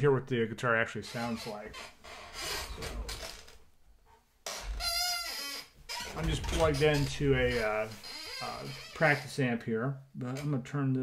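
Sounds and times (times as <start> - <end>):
office chair creaking: 1.0 - 3.7, 4.4 - 9.4.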